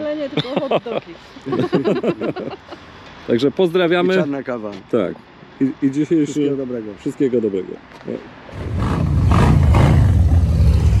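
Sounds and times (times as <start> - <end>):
motorcycle engine revving: 8.5 - 11.0.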